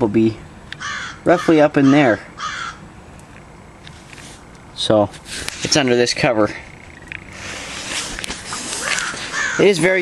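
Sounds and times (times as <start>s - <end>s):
harsh bird call: 0.8s - 2.8s, 6.6s - 10.0s.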